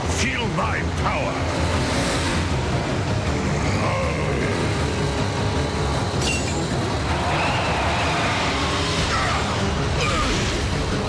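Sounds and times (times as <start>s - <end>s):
cartoon vehicles driving: 0.0s - 11.0s.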